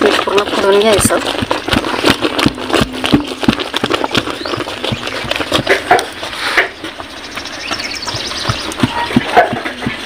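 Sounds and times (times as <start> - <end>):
wooden stick knocking metal pot: 7.8 - 10.0.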